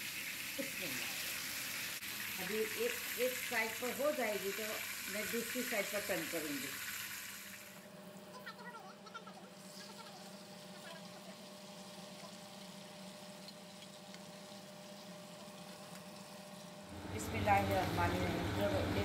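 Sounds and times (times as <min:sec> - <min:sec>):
fish sizzling in oil: 0:00.0 - 0:07.9, 0:09.6 - 0:17.0.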